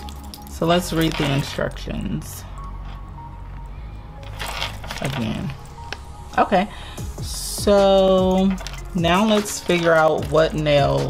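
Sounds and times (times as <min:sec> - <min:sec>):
paper rustling: 0:04.2 - 0:05.6.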